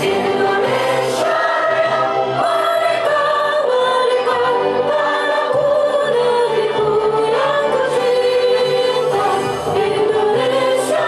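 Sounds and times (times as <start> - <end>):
women singing long held notes: 0.0 - 11.0.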